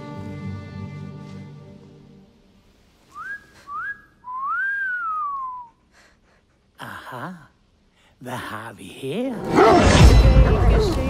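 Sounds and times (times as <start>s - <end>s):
person whistling notes: 3.1s - 5.8s.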